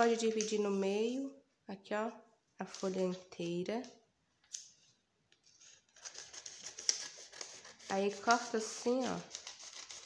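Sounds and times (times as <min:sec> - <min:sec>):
paper rustling: 0:04.8 - 0:10.0.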